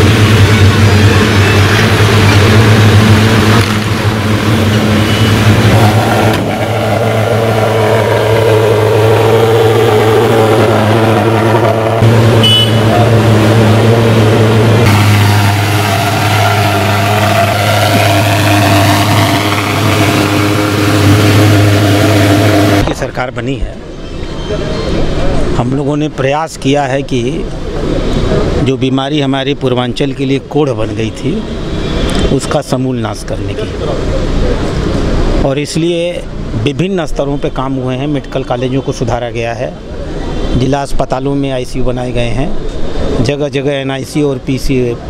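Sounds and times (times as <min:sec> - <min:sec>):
van engines running: 0:00.0 - 0:32.1.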